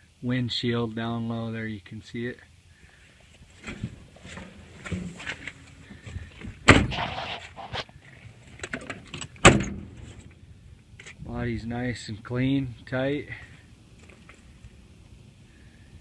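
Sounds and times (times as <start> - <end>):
steel truck door banging: 6.6 - 7.1, 9.4 - 10.0.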